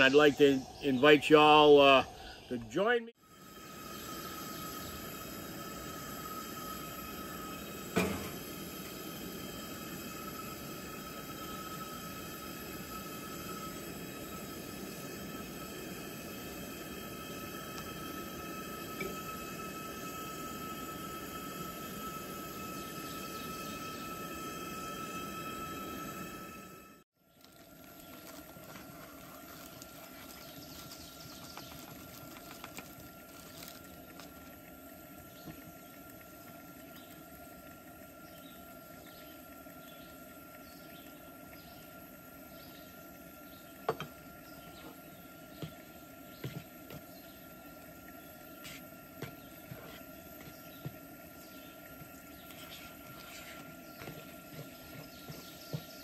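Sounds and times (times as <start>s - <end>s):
bacon sizzling in a skillet: 3.3s - 37.5s.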